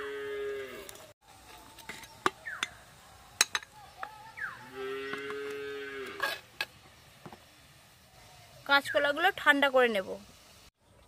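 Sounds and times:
cow mooing: 0:04.6 - 0:06.4.

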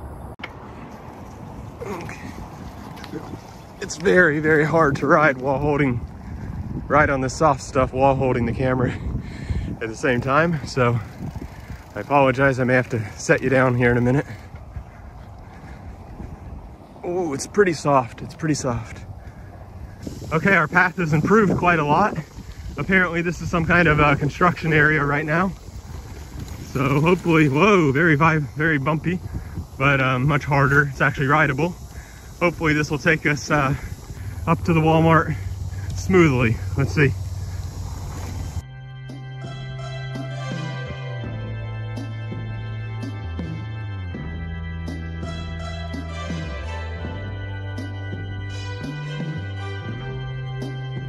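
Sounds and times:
wind buffeting microphone: 0:00.0 - 0:38.6
bicycle road noise on dirt: 0:00.0 - 0:41.6
background music: 0:38.6 - 0:51.0.

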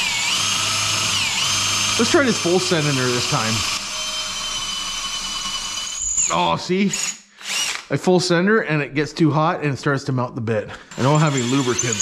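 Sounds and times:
power drill boring into metal: 0:00.0 - 0:07.9, 0:10.9 - 0:12.0.

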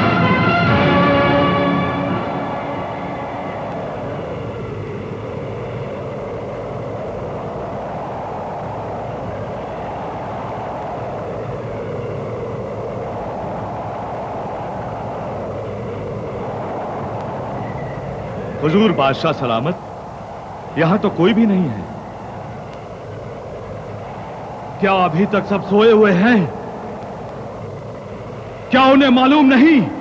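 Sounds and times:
rumbling rushing noise: 0:00.0 - 0:30.0.

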